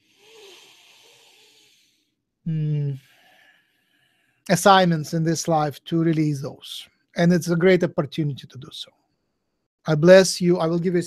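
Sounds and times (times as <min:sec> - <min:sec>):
breathy exhale: 0:00.0 - 0:02.1, 0:03.0 - 0:04.4.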